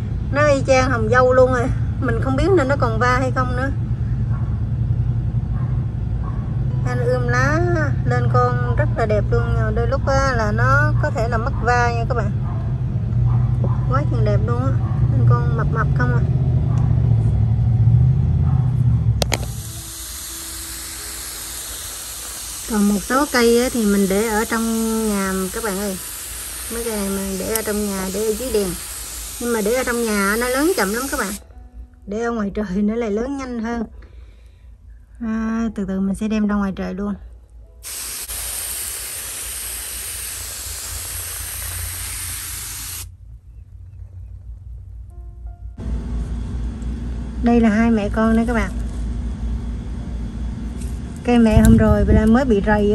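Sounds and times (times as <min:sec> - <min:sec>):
low rumble: 0:00.0 - 0:19.7, 0:43.1 - 0:52.9
sprayer clicks: 0:19.2 - 0:31.4
water spray hissing: 0:19.2 - 0:31.4, 0:37.8 - 0:43.1.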